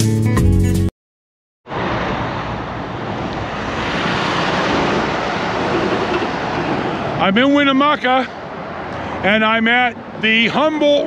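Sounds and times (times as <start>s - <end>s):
road traffic passing: 1.7s - 11.0s
truck passing: 1.7s - 11.0s.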